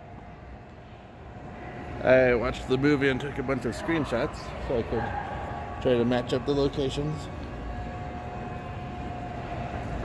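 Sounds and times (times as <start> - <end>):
escalator rumble and hum: 0.0 - 10.0.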